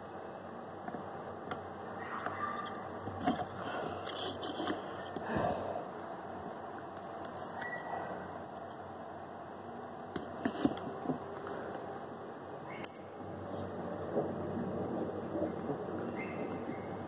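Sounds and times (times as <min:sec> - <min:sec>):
steady low hiss: 0:00.0 - 0:17.0
soldering iron scraping and clicking: 0:02.2 - 0:05.2.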